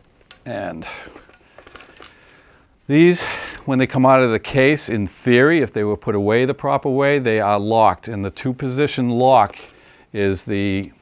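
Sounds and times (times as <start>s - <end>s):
tripod legs clicking and clinking: 0.0s - 0.6s, 1.2s - 2.2s, 9.4s - 9.8s.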